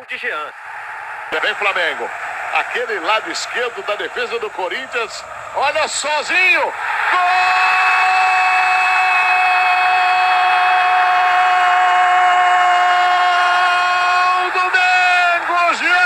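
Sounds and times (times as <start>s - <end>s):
commentator's long goal cry: 7.1s - 16.0s
man shouting: 7.1s - 16.0s.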